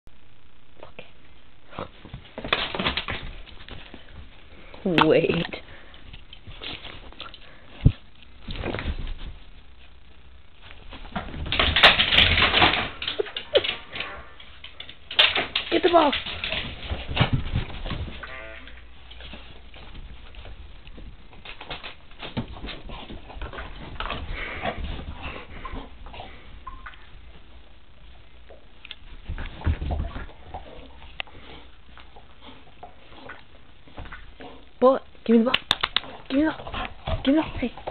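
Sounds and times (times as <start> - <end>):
dogs playing clicks and scuffles: 1.8 - 10.0, 10.6 - 37.9.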